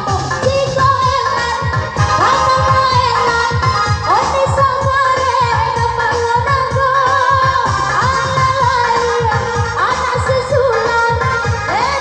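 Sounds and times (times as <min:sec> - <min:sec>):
loud music with fast low beat: 0:00.0 - 0:12.0.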